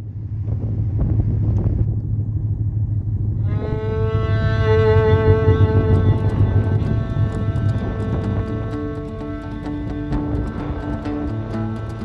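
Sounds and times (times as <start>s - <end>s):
ferry engine drone: 0.0s - 12.0s
wind buffeting microphone: 0.0s - 12.0s
music: 3.4s - 12.0s.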